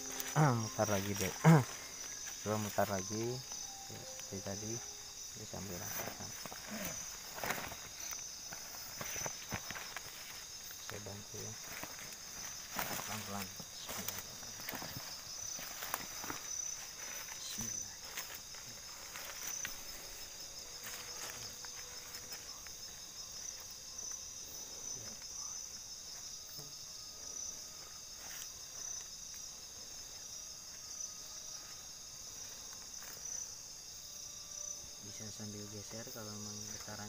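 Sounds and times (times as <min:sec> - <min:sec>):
night insects chorus: 0:00.0 - 0:37.0
rustles and clicks of movement: 0:05.7 - 0:22.8.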